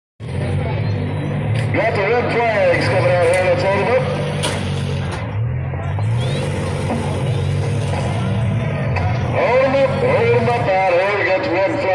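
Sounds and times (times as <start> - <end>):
car engines rumbling: 0.2 - 11.9.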